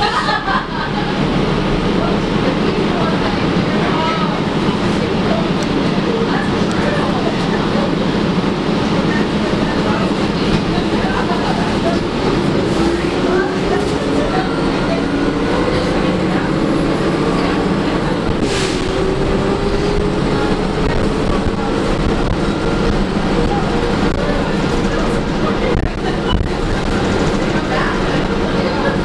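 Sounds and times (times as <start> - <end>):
bus engine whine: 0.0 - 29.0.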